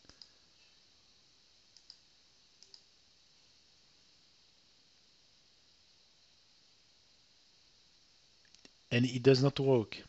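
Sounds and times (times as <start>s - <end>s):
computer mouse clicks: 0.0s - 0.3s, 1.7s - 2.0s, 2.6s - 2.9s
faint hiss: 0.0s - 10.0s.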